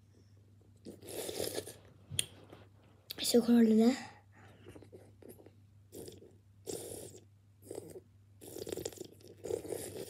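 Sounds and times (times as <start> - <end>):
wet mouth sucking sounds: 0.8 - 1.8, 6.0 - 10.0.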